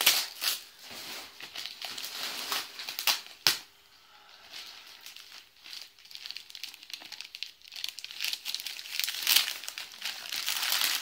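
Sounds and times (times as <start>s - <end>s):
wrapping paper tearing and crumpling: 0.0s - 3.6s, 4.5s - 11.0s.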